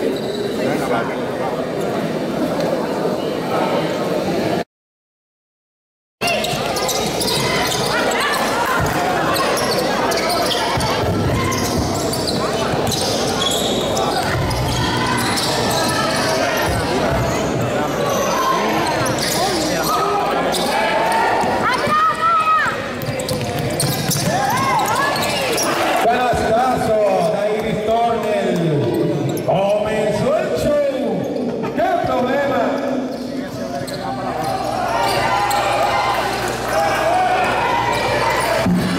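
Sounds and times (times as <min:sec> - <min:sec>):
echoing voices in gym: 0:00.0 - 0:04.6, 0:06.2 - 0:38.9
basketball bouncing on court: 0:23.0 - 0:24.9.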